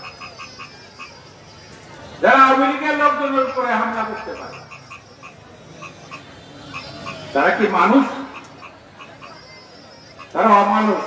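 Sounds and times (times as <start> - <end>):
faint background noise: 0.0 - 11.0
man speaking over public address: 2.2 - 4.7, 7.3 - 8.4, 10.3 - 11.0.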